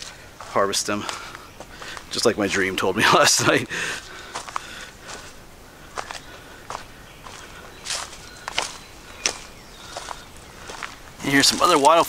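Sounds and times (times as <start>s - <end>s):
footsteps on dirt trail: 0.0s - 12.0s.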